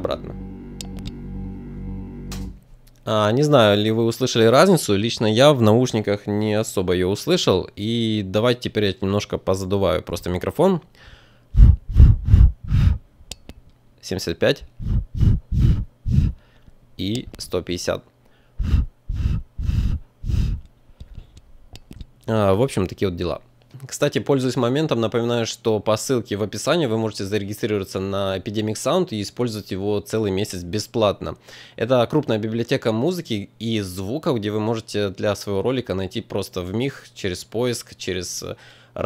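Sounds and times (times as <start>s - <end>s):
electrical appliance hum: 0.0s - 3.0s, 11.5s - 13.1s, 14.6s - 17.6s, 18.3s - 22.1s
breath puffs on microphone: 11.0s - 13.1s, 14.8s - 16.6s, 18.4s - 21.4s.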